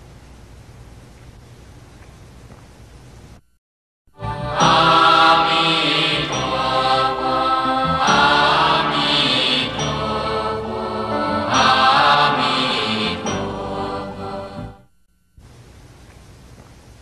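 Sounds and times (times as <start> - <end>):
devotional chant sung to music: 4.2 - 14.9.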